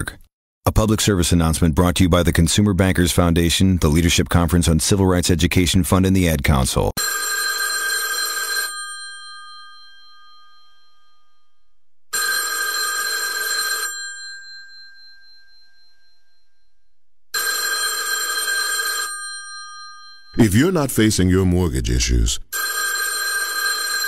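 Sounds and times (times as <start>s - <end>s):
telephone ringing: 7.0s - 21.1s, 22.0s - 24.0s.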